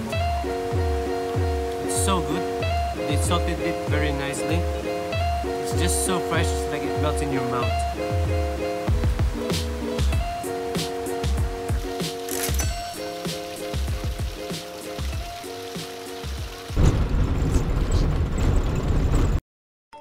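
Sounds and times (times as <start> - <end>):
music with held chords and beat: 0.0 - 16.7.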